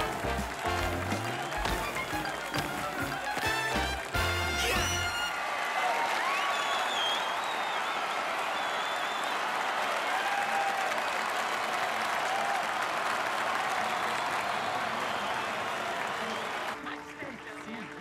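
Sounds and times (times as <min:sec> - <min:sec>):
audience applauding: 0:00.0 - 0:18.0.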